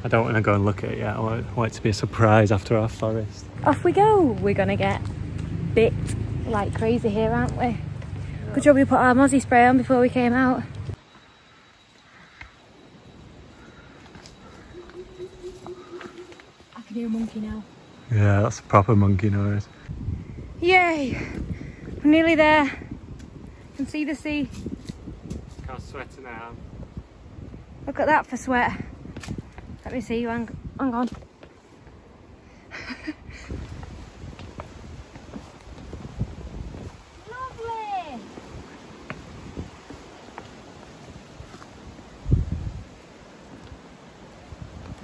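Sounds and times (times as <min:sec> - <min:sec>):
footsteps on rocky trail: 0:13.5 - 0:17.2, 0:29.0 - 0:30.1, 0:31.0 - 0:32.1, 0:33.5 - 0:42.5
animal hooting: 0:14.4 - 0:16.6
wind buffeting microphone: 0:19.6 - 0:43.0.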